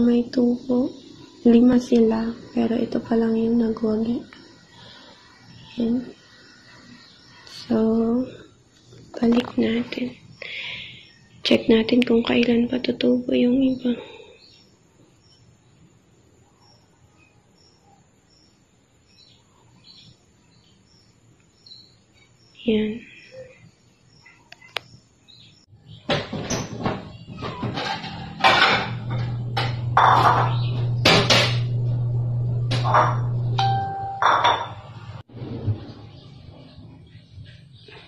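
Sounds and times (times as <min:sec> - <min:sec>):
faint birds chirping: 0:00.0 - 0:32.3, 0:32.9 - 0:38.0
bright ringing clinks: 0:33.6 - 0:34.8.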